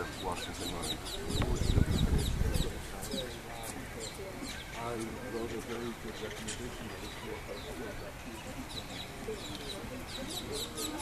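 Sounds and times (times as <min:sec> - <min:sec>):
faint voices: 0:00.0 - 0:11.0
small bird calling: 0:00.0 - 0:11.0.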